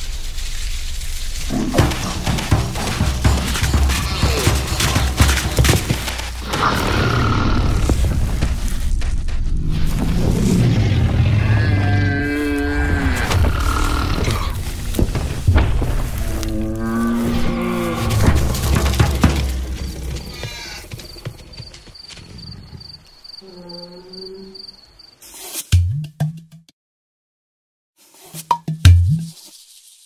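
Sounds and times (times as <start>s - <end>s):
deep rumbling and thuds: 1.4s - 12.0s, 12.9s - 21.6s
dense clatter: 1.5s - 6.4s, 18.1s - 20.3s
wavering animal cry: 19.8s - 21.4s.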